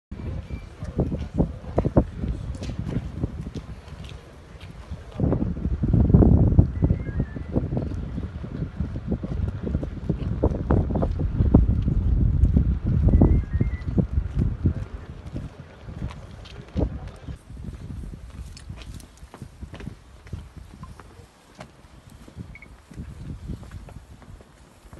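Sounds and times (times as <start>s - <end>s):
wind buffeting microphone: 0.1s - 24.9s.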